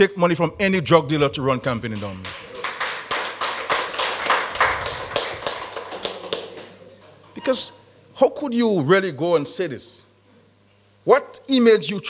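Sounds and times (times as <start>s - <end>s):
audience clapping: 1.8s - 6.9s.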